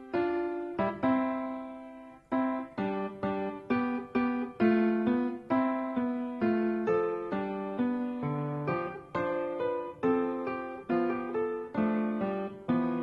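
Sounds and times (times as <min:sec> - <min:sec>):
keyboard playing simple melody: 0:00.0 - 0:13.0.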